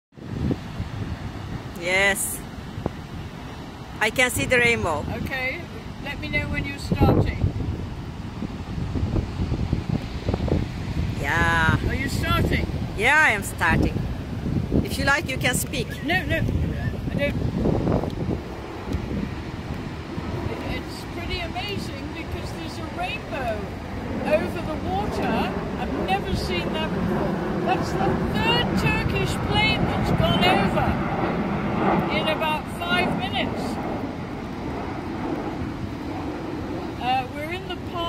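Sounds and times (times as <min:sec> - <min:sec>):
wind buffeting microphone: 0:00.1 - 0:38.0
waterfall rumbling: 0:00.2 - 0:36.1
woman speaking: 0:01.8 - 0:02.4, 0:04.0 - 0:07.4, 0:11.2 - 0:14.0, 0:14.8 - 0:16.4, 0:20.5 - 0:27.0, 0:27.6 - 0:31.0, 0:32.1 - 0:33.8, 0:37.0 - 0:38.0.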